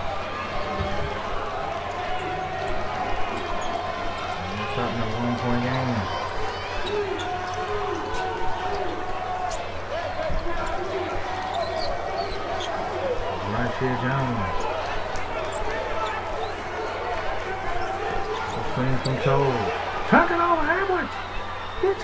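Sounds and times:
crowd murmuring in a large hall: 0.0s - 22.0s
sneakers squeaking: 0.3s - 20.0s.

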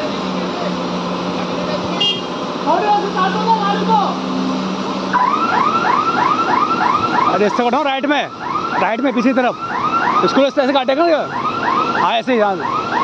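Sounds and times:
warbling alarm: 5.1s - 13.0s.

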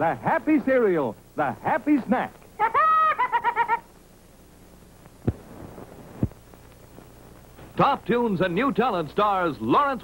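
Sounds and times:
faint tape hiss: 0.0s - 10.0s
high-pitched cartoon laugh: 2.6s - 3.9s.

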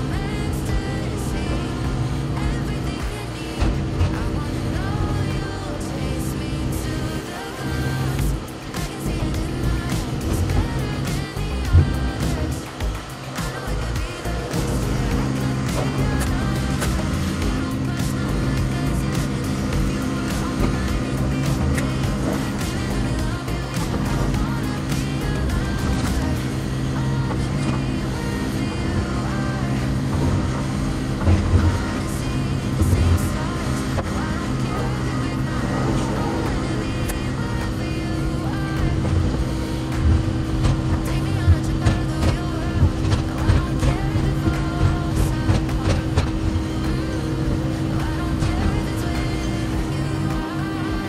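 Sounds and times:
background music: 0.0s - 51.0s
diesel engine running: 0.0s - 51.0s.

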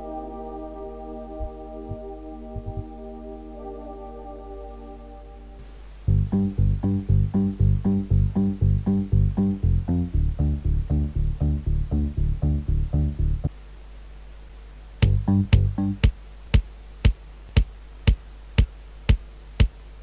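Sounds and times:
sustained synth chord: 0.0s - 13.5s
staccato synth bass line: 6.1s - 13.5s, 15.0s - 16.1s.

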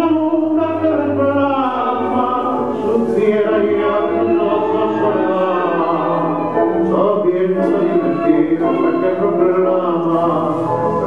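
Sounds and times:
person singing long notes: 0.0s - 10.8s
tango song: 0.0s - 11.0s.

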